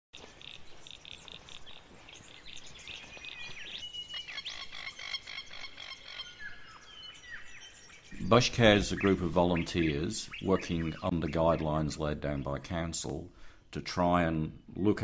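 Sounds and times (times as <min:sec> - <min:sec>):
birds chirping: 0:00.1 - 0:15.0
faint outdoor hiss: 0:00.2 - 0:15.0.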